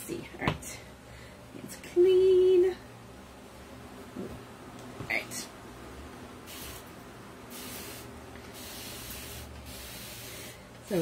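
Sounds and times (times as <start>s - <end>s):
spray bottle hissing bursts: 6.5s - 6.9s, 7.5s - 10.6s.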